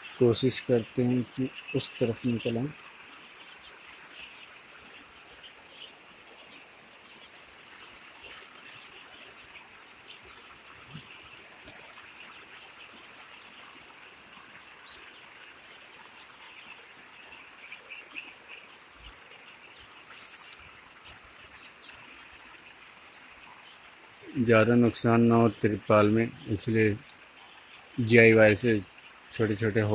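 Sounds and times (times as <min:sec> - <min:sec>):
rainwater trickling and dripping: 0:00.0 - 0:29.9.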